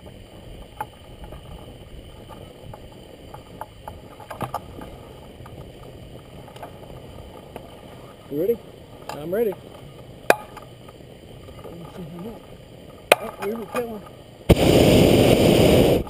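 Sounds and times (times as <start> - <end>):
wind rumble: 0.0 - 16.0.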